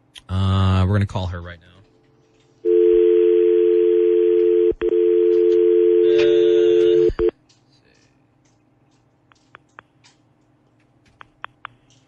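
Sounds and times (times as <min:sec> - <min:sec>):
telephone dial tone: 0:02.6 - 0:07.3.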